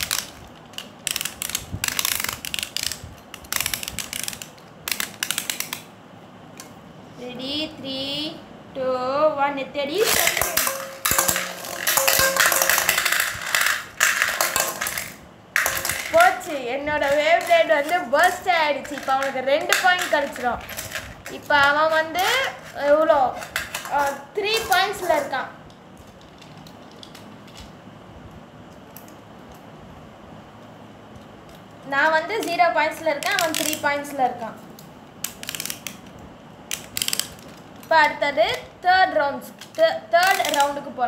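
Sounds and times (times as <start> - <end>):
spinning tops clattering in metal bowl: 10.0 - 25.4.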